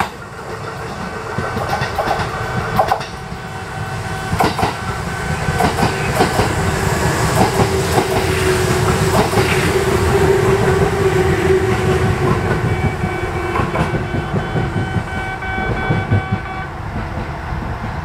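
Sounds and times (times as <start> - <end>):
train wheels clattering over rail joints: 0.0 - 3.5, 4.1 - 18.0
train steady whine: 0.0 - 18.0.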